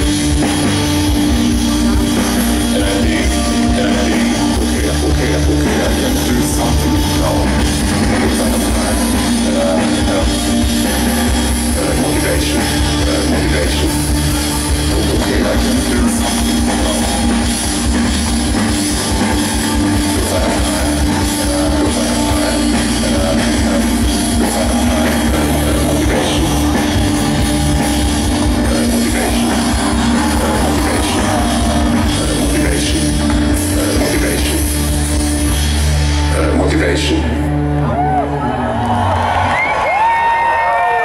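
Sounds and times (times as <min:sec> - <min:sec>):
drum kit: 0:00.0 - 0:37.1
bass guitar: 0:00.0 - 0:41.0
electric guitar: 0:00.0 - 0:41.0
live rock band playing: 0:00.0 - 0:41.0.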